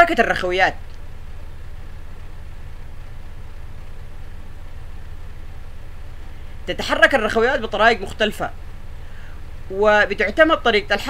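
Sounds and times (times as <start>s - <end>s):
low hum: 0.0s - 11.0s
faint hiss: 0.6s - 11.0s.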